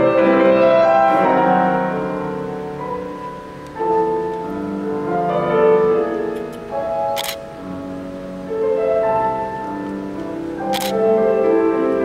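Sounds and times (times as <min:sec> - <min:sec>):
grand piano playing: 0:00.0 - 0:12.0
camera shutter clicks: 0:07.2 - 0:07.4, 0:10.7 - 0:11.0.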